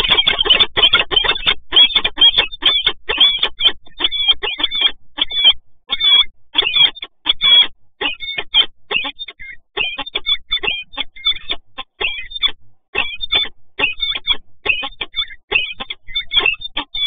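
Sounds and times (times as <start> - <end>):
falcons calling harshly: 0.0 - 17.0.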